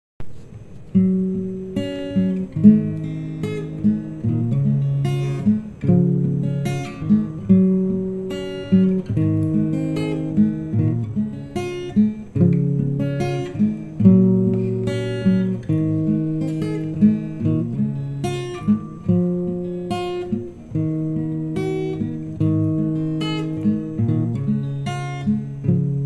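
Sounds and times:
acoustic guitar strumming chords: 0.2s - 26.0s.

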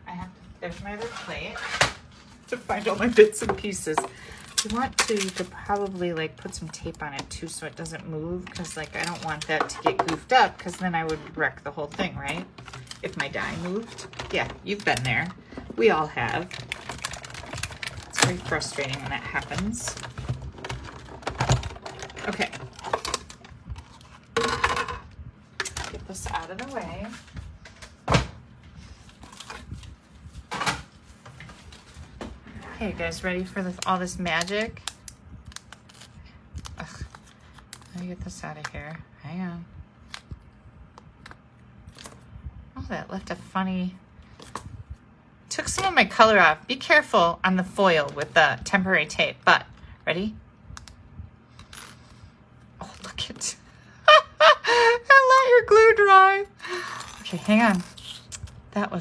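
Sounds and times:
plastic and paper rustling: 0.6s - 24.5s, 28.6s - 38.8s.

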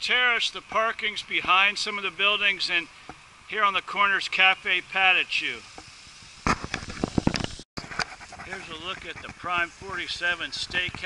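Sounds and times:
microphone handling clicks: 6.4s - 8.1s.

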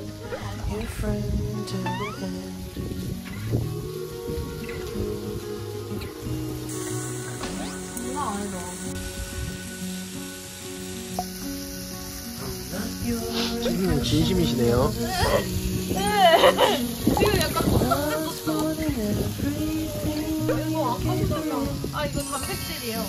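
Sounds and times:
background music: 0.0s - 23.0s
meat sizzling on a grill plate: 0.0s - 23.0s.

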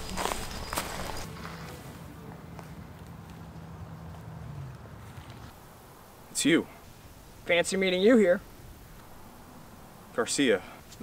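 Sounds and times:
footsteps on leaf litter: 0.0s - 3.5s.

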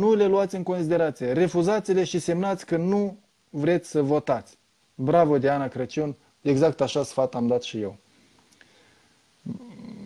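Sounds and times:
man humming low: 9.4s - 10.0s.

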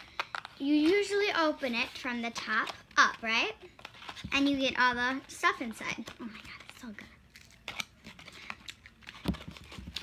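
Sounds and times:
paperboard box being handled: 7.7s - 10.0s.

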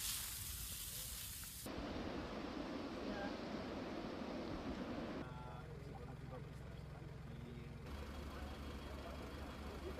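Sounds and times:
rushing hiss of fire: 0.0s - 5.2s
fire truck engines idling: 3.9s - 9.9s.

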